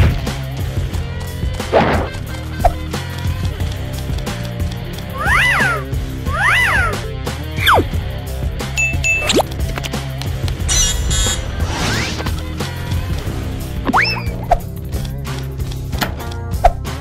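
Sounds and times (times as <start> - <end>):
animation background music: 0.0 - 17.0
warbling cartoon tones: 7.6 - 7.9
short high beep: 8.8 - 9.5.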